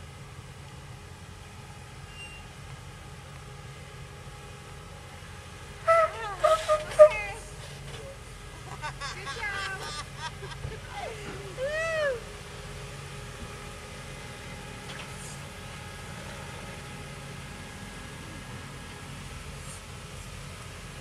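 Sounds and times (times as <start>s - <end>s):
vehicle engine running at low speed: 0.0s - 21.0s
people calling out: 5.9s - 7.5s, 10.9s - 12.3s.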